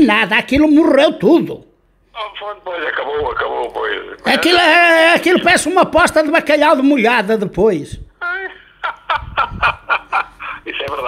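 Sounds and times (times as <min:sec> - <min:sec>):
person laughing: 0:08.2 - 0:11.0.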